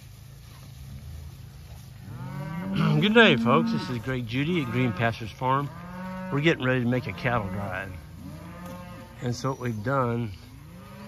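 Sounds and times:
cattle mooing: 2.0s - 9.4s, 10.5s - 11.0s.

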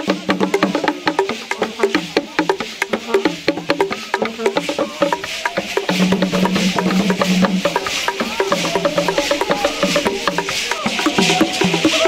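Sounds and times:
shaken rattle hiss: 0.0s - 12.0s
skin-headed drums: 0.0s - 12.0s
wooden percussion knocking: 0.0s - 12.0s.

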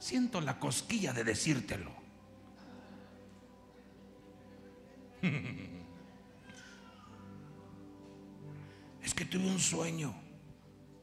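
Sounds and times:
man giggling: 5.2s - 6.0s.

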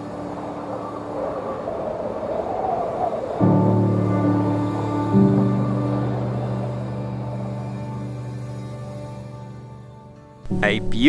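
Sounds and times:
soundtrack music: 3.5s - 11.0s.

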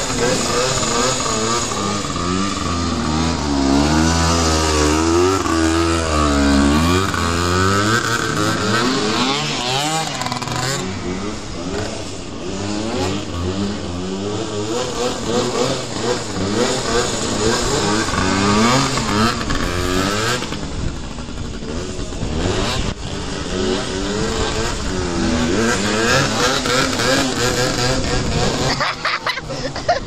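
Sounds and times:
two-stroke engine revving: 0.0s - 30.0s.

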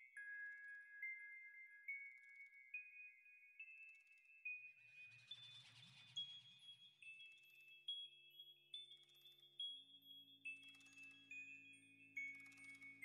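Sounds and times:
bell-like chime melody: 0.0s - 5.6s, 6.2s - 13.0s.

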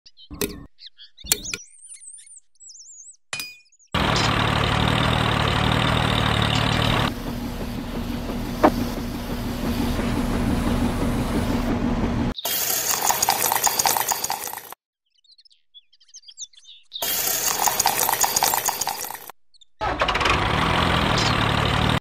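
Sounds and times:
birds chirping: 0.0s - 19.8s, 21.0s - 21.6s
small concrete mixer engine: 4.0s - 14.8s, 17.0s - 22.0s.

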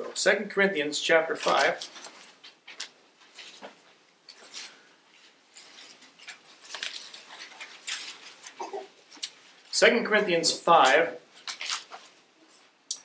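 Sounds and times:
pages rustling and flicking: 1.3s - 9.3s, 11.4s - 12.2s.

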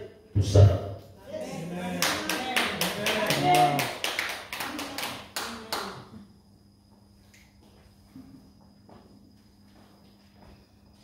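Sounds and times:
faint steady hum: 0.0s - 11.0s
voices: 0.4s - 6.2s
rhythmic hand clapping: 2.0s - 6.1s.

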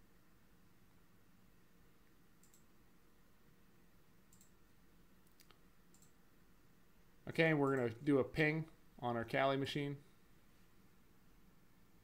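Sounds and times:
computer mouse clicks: 2.4s - 2.8s, 4.3s - 4.6s, 5.2s - 6.2s.

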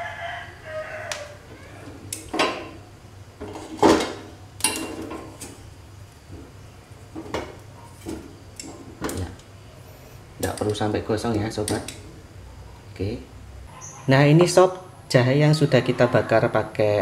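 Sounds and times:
metal tongs clinking on grate: 3.8s - 5.6s.

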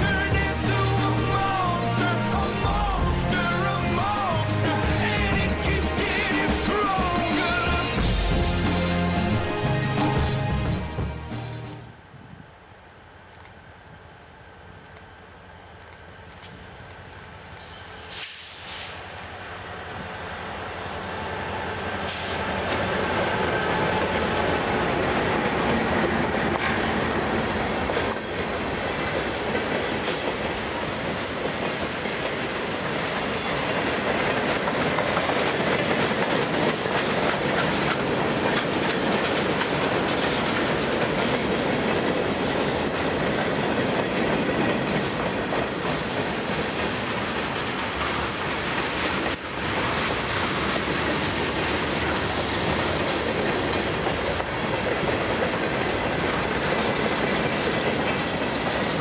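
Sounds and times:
freight train wheels on rails: 0.0s - 59.0s.

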